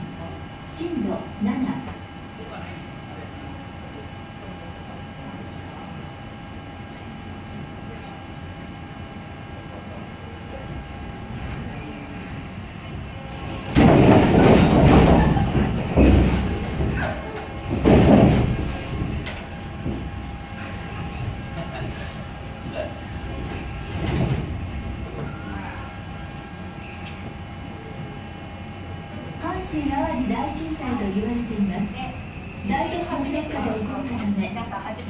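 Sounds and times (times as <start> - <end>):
heavy rumbling in surges: 10.9 - 26.3.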